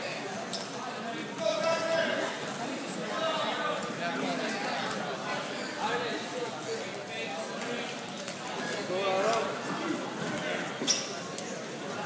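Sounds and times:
spectators' voices: 0.0s - 12.0s.

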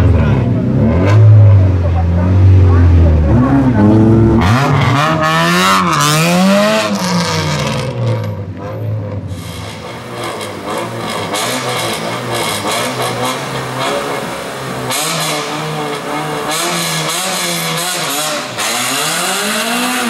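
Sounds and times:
race car engine revving: 0.0s - 20.0s.

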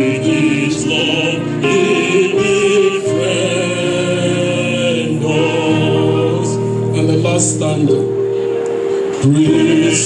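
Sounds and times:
voices singing along: 0.0s - 7.9s, 9.2s - 10.0s
man singing into microphone: 0.0s - 8.2s, 9.1s - 10.0s
low accompaniment notes: 0.0s - 10.0s.

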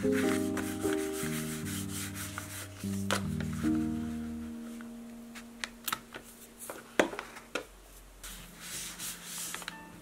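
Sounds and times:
background music with held notes: 0.0s - 7.0s, 8.7s - 10.0s
hand scraping over paper: 8.2s - 9.7s.

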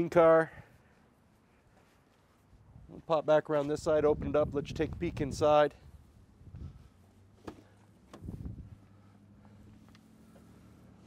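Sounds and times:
car door clicks and thuds: 7.4s - 8.4s.

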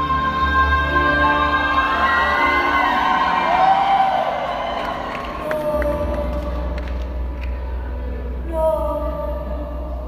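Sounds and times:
audience cheering and whistling: 1.3s - 5.6s.

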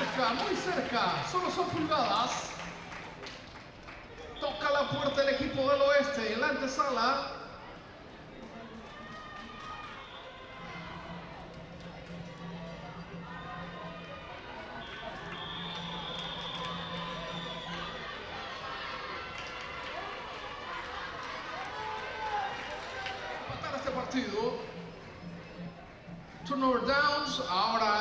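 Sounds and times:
voices of players and onlookers: 0.0s - 28.0s
background music sustained notes: 10.4s - 19.4s.

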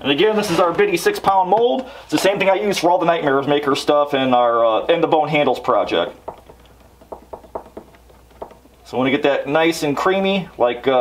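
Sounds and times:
stir stick scraping plastic cup: 6.2s - 9.0s.

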